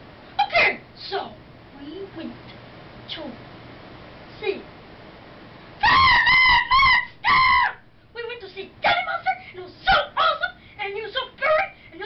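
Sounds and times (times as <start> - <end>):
child squealing: 5.8 - 7.8, 9.9 - 10.6.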